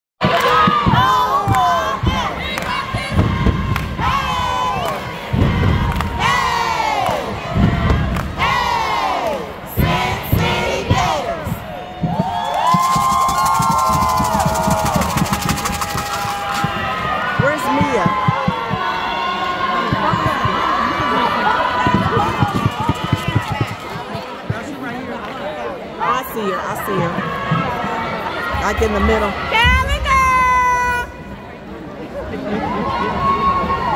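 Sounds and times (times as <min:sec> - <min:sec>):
crowd cheering and shouting: 0:00.2 - 0:31.5, 0:32.2 - 0:33.9.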